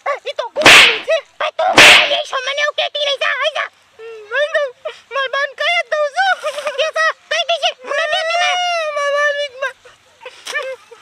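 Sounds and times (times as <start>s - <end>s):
high-pitched chattering voices: 0.6s - 2.3s
loud sharp cracks: 0.6s - 2.3s.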